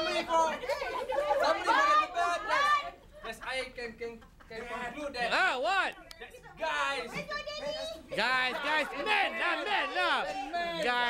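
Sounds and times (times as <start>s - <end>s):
people talking over one another: 7.0s - 11.0s.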